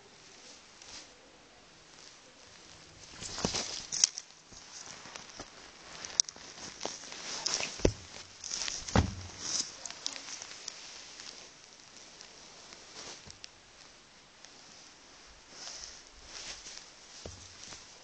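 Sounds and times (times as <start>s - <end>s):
bedding rustling: 1.8s - 18.0s
knocks and thumps on bed: 8.8s - 9.4s.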